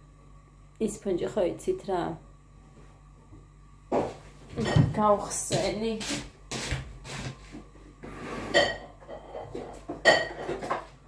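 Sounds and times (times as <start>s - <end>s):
dishes and cutlery clattering: 8.5s - 10.9s.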